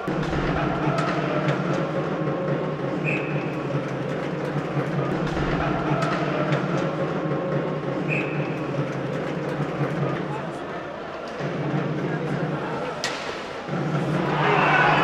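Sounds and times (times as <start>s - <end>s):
ice hockey arena din: 0.0s - 15.0s.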